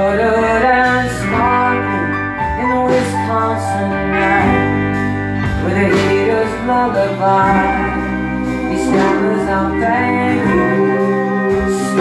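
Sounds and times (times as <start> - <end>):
bass line: 0.0 - 12.0
electric and acoustic guitars: 0.0 - 12.0
keyboard: 0.0 - 12.0
person singing lead vocal: 0.0 - 12.0.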